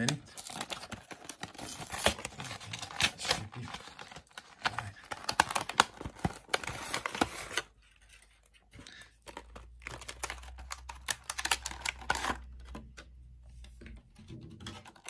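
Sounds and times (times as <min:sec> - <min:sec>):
plastic packaging crackling: 0:00.0 - 0:07.8, 0:08.9 - 0:12.8.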